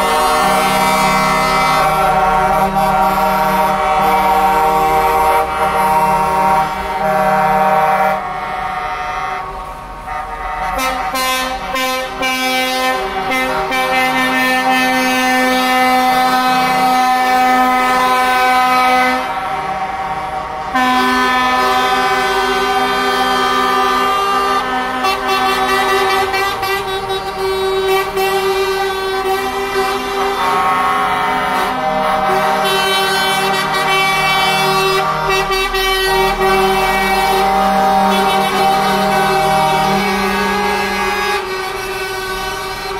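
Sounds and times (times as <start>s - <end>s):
truck air horns blaring: 0.0s - 42.9s.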